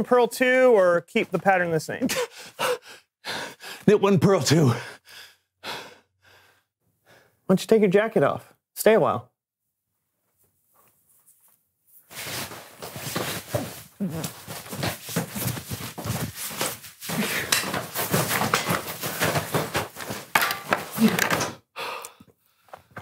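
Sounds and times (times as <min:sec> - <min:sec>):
fabric rustling: 0:10.0 - 0:21.2.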